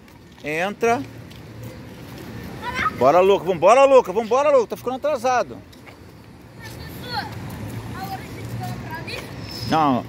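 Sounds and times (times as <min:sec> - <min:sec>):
distant children's voices: 0:06.4 - 0:09.7.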